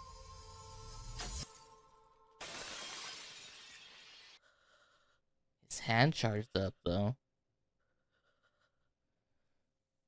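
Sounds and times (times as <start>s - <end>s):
man speaking: 5.7s - 7.2s.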